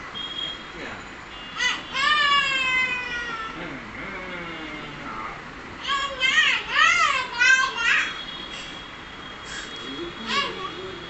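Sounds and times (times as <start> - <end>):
toddler babbling: 1.6 - 3.6, 5.8 - 8.2, 10.0 - 11.0.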